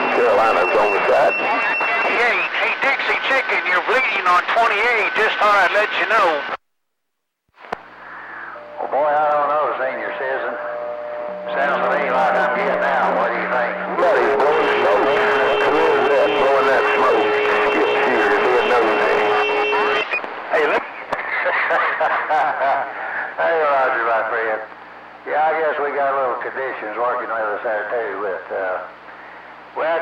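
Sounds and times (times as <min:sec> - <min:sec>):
garbled radio voices: 0:00.0 - 0:06.6, 0:07.9 - 0:10.7, 0:11.4 - 0:22.1
radio hiss with heterodyne whistles: 0:00.0 - 0:06.6, 0:07.9 - 0:21.8.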